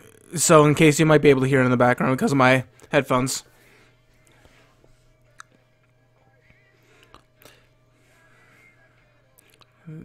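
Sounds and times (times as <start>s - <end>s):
faint music from headphones: 0.0s - 10.0s
steady low hum: 0.0s - 10.0s.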